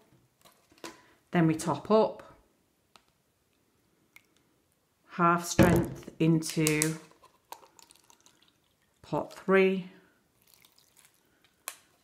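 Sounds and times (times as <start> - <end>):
liquid trickling and dripping: 7.5 - 9.4, 10.3 - 11.8.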